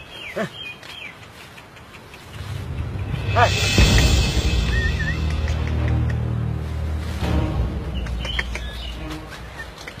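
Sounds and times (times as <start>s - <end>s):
small birds chirping: 0.0s - 3.4s, 7.8s - 10.0s.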